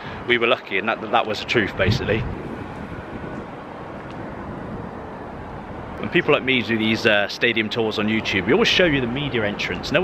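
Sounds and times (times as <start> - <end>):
low urban rumble: 0.0 - 10.0.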